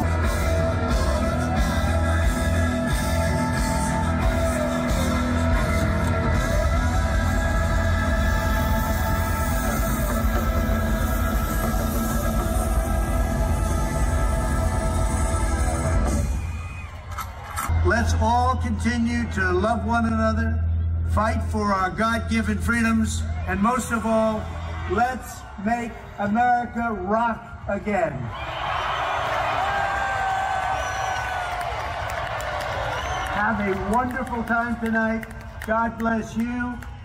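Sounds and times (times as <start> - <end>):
live rock band playing loud: 0.0 - 16.4.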